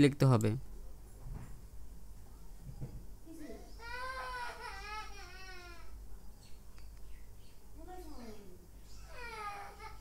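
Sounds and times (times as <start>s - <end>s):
baby crying: 3.7s - 6.0s, 9.0s - 10.0s.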